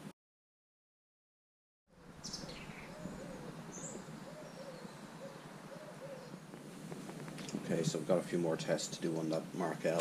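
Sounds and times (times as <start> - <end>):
pigeon cooing: 1.9 - 7.6
small birds chirping: 1.9 - 10.0.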